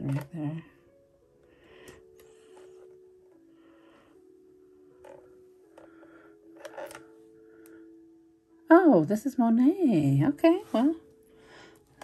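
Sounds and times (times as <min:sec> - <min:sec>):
soft background music: 0:00.0 - 0:12.0
necklace box clicks and rustles: 0:04.9 - 0:07.2.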